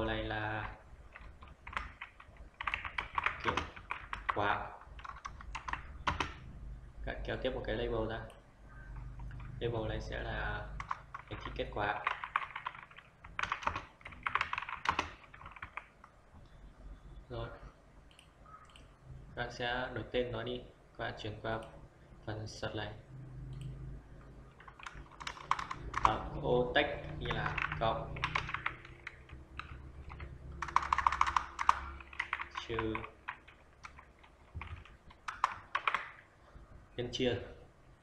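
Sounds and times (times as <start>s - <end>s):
computer keyboard typing: 0.0s - 6.5s, 8.7s - 9.6s, 10.6s - 16.2s, 23.5s - 26.4s, 27.0s - 36.3s.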